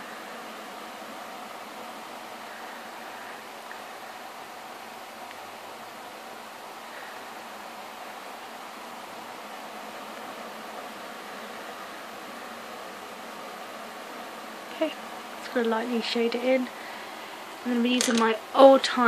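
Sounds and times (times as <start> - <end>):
steady background hiss: 0.0 - 19.0.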